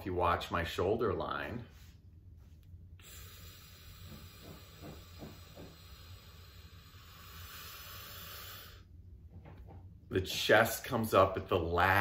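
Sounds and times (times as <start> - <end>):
person inhaling slowly: 3.0 - 9.0.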